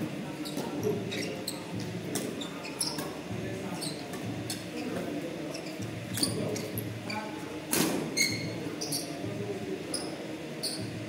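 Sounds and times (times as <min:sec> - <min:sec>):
shoes squeaking on court floor: 0:00.4 - 0:07.3, 0:08.1 - 0:09.3, 0:09.9 - 0:11.0.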